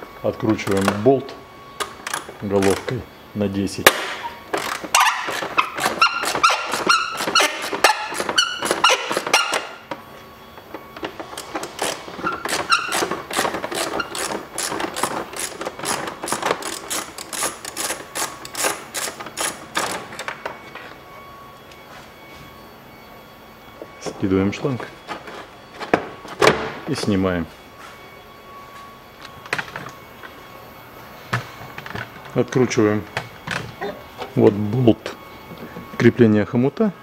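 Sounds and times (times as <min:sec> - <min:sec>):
tool handling: 0:03.8 - 0:10.0, 0:10.6 - 0:20.9
socket ratchet clicking: 0:11.4 - 0:20.1.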